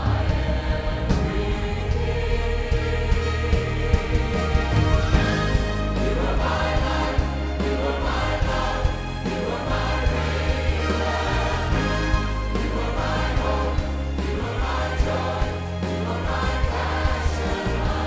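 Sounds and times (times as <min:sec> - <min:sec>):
band and orchestra playing: 0:00.0 - 0:18.0
choir singing: 0:00.0 - 0:18.0
steady bass line: 0:00.0 - 0:18.0.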